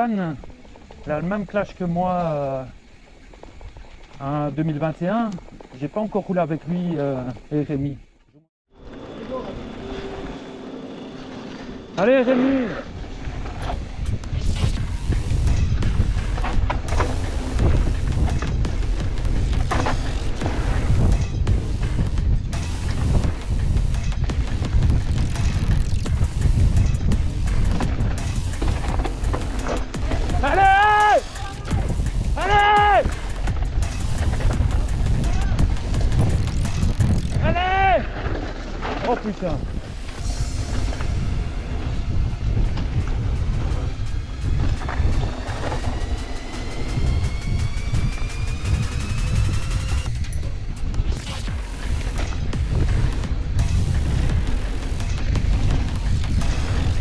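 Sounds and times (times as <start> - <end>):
bike rattling over rough ground: 0.0 - 8.0, 8.8 - 57.0
wind rumble: 8.7 - 57.0
person shouting: 30.1 - 31.8, 32.4 - 33.1, 37.4 - 38.1.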